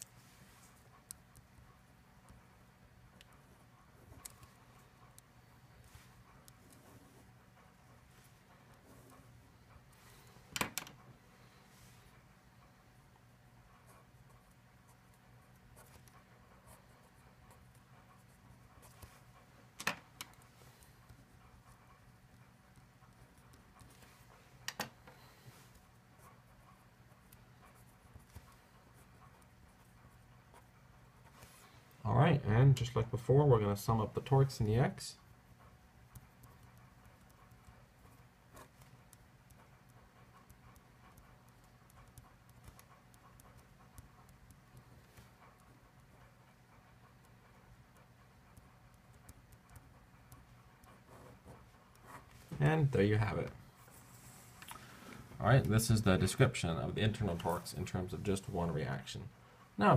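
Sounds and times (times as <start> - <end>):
low room hum: 0.0 - 59.9
pen scratching on paper: 0.4 - 10.0, 13.7 - 19.4, 20.2 - 24.4, 25.5 - 31.9, 34.2 - 52.7.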